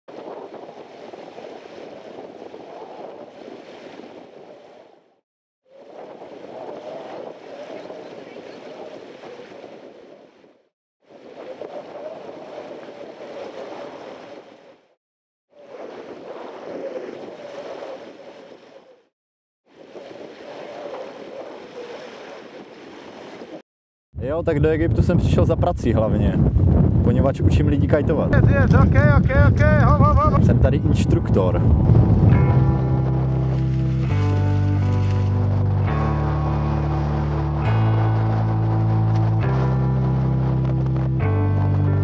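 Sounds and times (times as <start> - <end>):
wind buffeting microphone: 0.1 - 4.5, 5.8 - 10.2, 24.2 - 42.0
rushing water: 0.1 - 4.7, 5.7 - 14.9, 19.7 - 23.6, 31.9 - 42.0.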